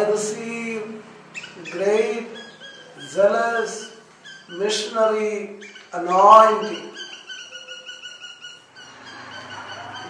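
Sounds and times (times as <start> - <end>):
birds chirping rapidly: 0.0 - 10.0.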